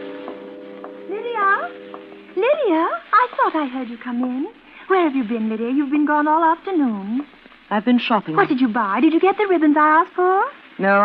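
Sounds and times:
held music chord: 0.0s - 3.2s.

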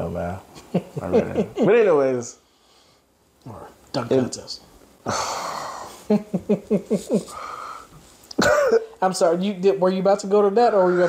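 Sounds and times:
man laughing: 0.6s - 1.9s, 5.1s - 7.6s.

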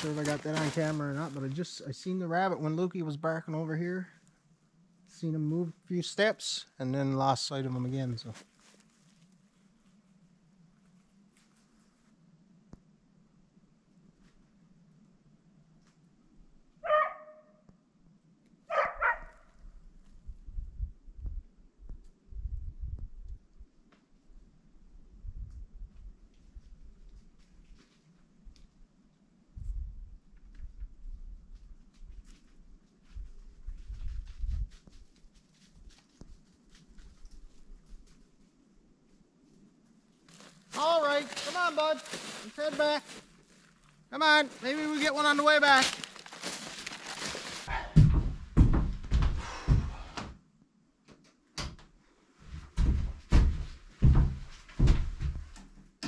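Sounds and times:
dog barking: 16.8s - 17.5s, 18.7s - 19.4s.

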